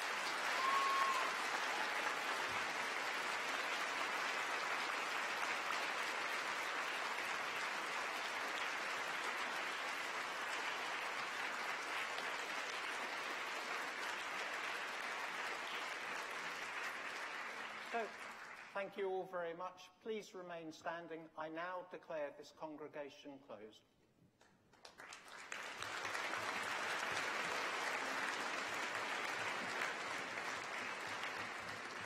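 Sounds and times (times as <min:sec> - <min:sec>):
crowd applauding: 0:00.0 - 0:18.8, 0:24.7 - 0:32.0.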